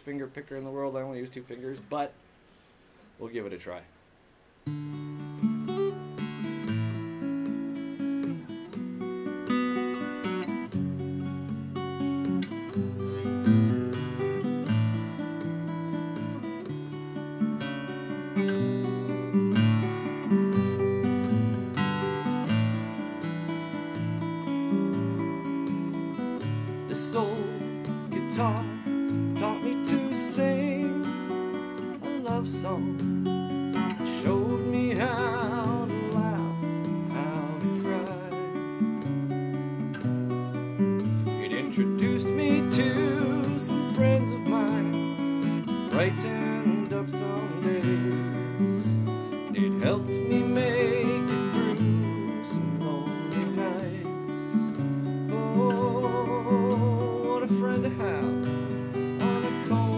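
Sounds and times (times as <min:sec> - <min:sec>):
fingerpicked acoustic guitar: 0:04.5 - 0:59.9.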